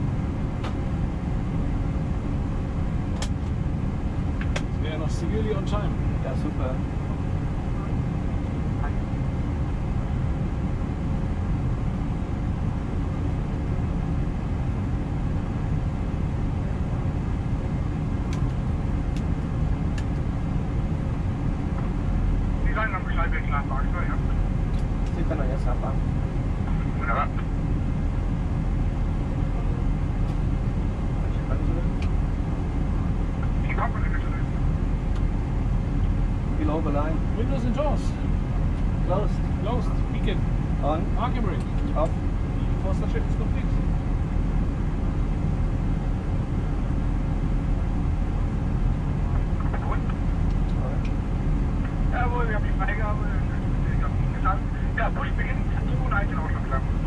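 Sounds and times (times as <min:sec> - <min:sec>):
aircraft cockpit hum: 0:00.0 - 0:57.0
deep low rumble: 0:00.0 - 0:57.0.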